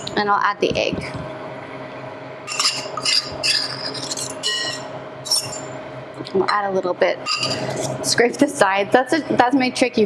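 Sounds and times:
metal utensil scraping bowl: 0:02.5 - 0:05.7, 0:07.2 - 0:08.0.

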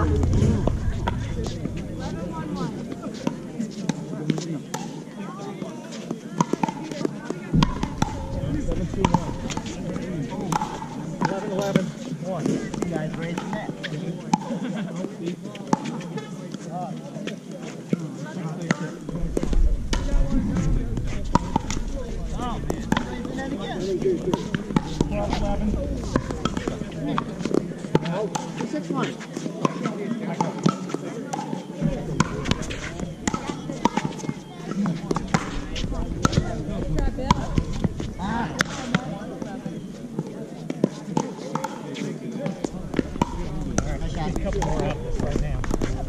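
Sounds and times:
low rumble: 0:00.0 - 0:03.5, 0:24.5 - 0:27.3
background voices: 0:00.0 - 0:05.0, 0:19.0 - 0:29.5.

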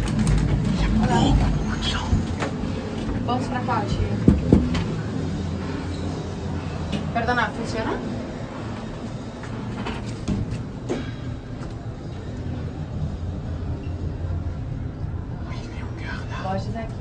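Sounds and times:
elevator rumble and hum: 0:00.0 - 0:17.0.

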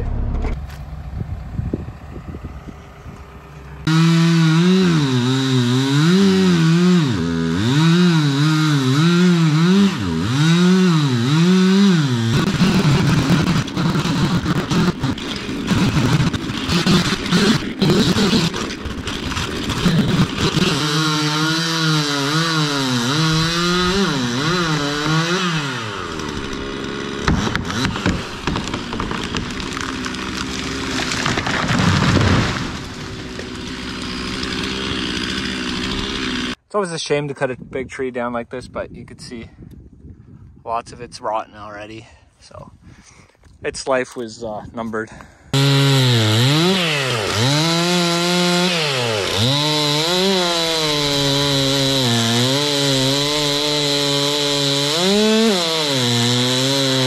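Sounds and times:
chainsaw revving: 0:02.8 - 0:36.6, 0:45.5 - 0:57.0
chainsaw cutting into trunk: 0:03.8 - 0:36.6, 0:45.5 - 0:57.0
tree falling crash: 0:23.2 - 0:36.4.

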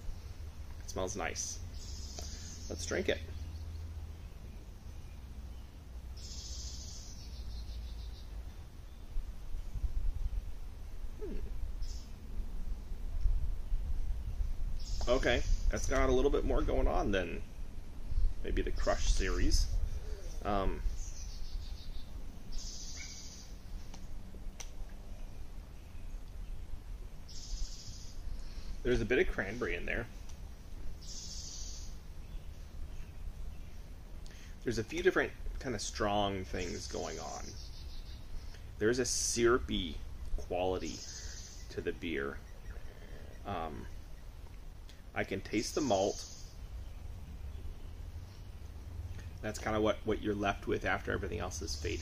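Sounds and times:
steady low rumble: 0:00.0 - 0:52.0
high bird trills: 0:06.2 - 0:08.4, 0:14.8 - 0:15.9, 0:19.1 - 0:23.6, 0:31.0 - 0:33.1, 0:40.6 - 0:44.3
wind rumbling on microphone: 0:08.2 - 0:22.9
person humming hmm: 0:11.2 - 0:11.6.

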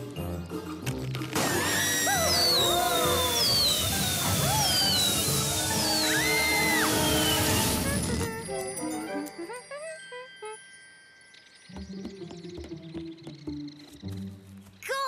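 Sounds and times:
background music: 0:00.0 - 0:15.0
falling whistles: 0:01.5 - 0:08.2.

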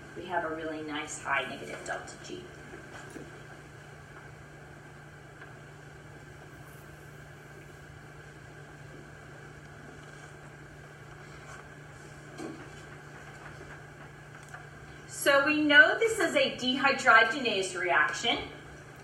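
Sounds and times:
fan-like hiss: 0:00.0 - 0:19.0.

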